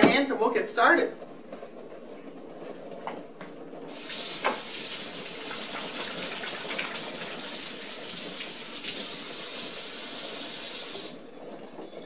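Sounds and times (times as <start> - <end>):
faucet running over washing hands: 3.9 - 11.2.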